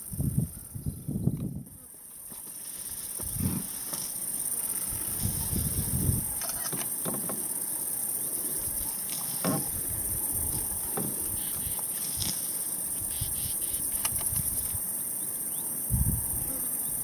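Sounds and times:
high-pitched insect buzz: 0:00.0 - 0:17.0.

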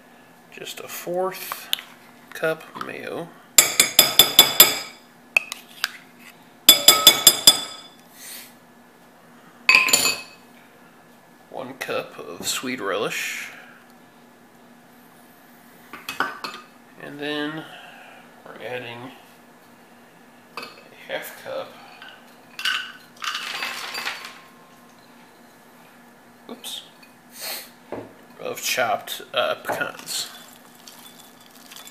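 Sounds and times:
metal spoon clinking glass bowl: 0:06.7 - 0:07.9, 0:30.4 - 0:31.9
nuts rattling into glass bowl: 0:23.2 - 0:24.4, 0:30.2 - 0:31.9.

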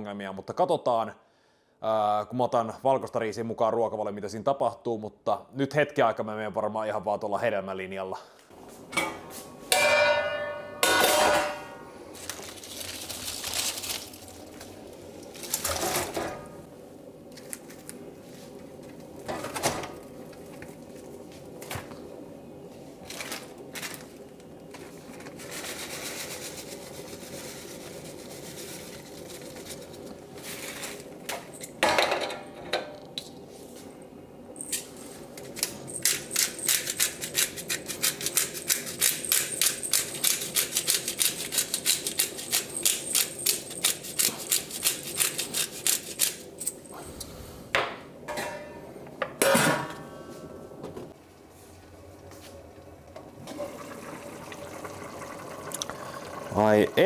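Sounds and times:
metallic clank from pot: 0:08.9 - 0:11.9, 0:48.3 - 0:48.8.

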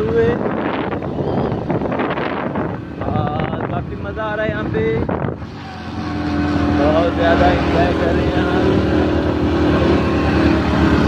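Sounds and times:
vehicle engine running: 0:00.0 - 0:11.0
voices: 0:00.0 - 0:11.0.

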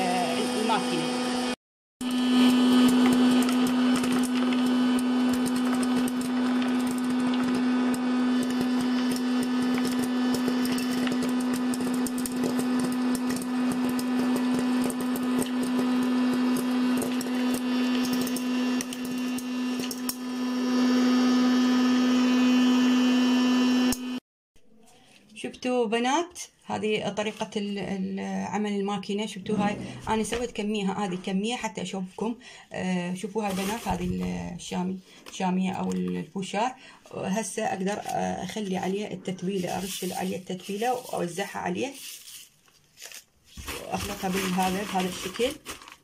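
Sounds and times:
popcorn maker fan humming: 0:00.0 - 0:24.2.

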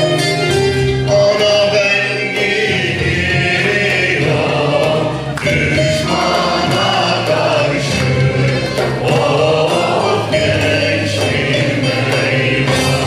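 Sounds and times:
folk choir singing: 0:01.0 - 0:13.0.

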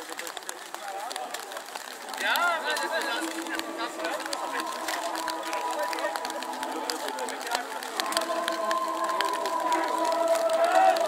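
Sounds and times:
held musical tone: 0:02.6 - 0:11.0.

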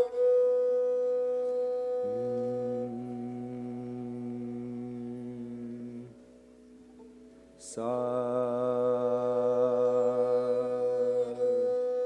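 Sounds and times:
lower sustained note: 0:00.0 - 0:12.0.

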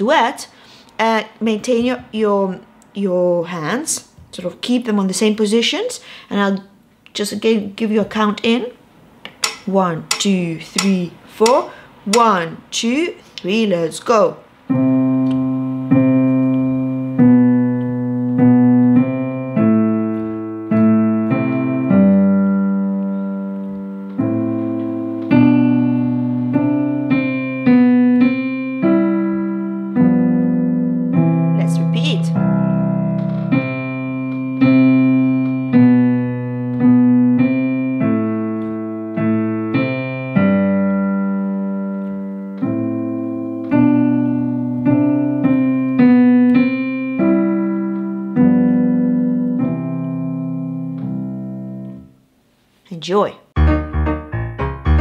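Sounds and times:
piano chords and melody: 0:14.6 - 0:52.2, 0:53.6 - 0:55.0.

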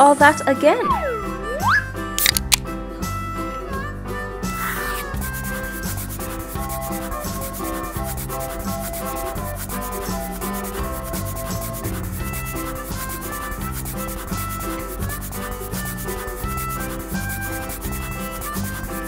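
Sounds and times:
light background tune: 0:00.0 - 0:19.0
marker scratching on paper: 0:04.5 - 0:19.0.

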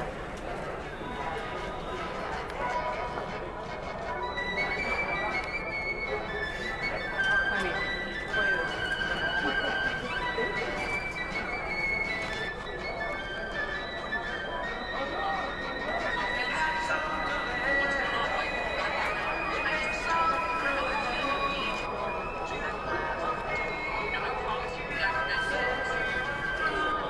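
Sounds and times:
background music: 0:00.0 - 0:27.0
murmur of voices: 0:00.0 - 0:27.0.

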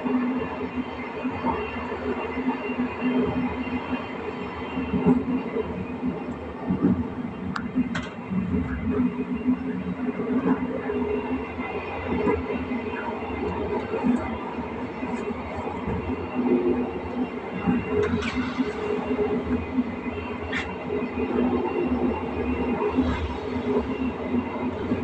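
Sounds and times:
train running noise: 0:00.0 - 0:25.0
wheels clicking on track: 0:04.9 - 0:25.0.

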